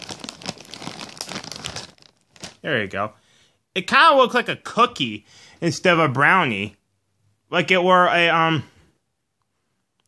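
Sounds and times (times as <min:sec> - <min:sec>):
plastic snack bag crinkling: 0:00.0 - 0:02.8.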